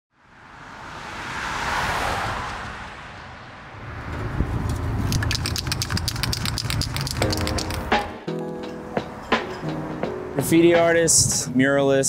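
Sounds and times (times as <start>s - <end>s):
whoosh: 0.2s - 5.1s
spray paint can rattling: 4.8s - 8.1s
music: 7.2s - 12.0s.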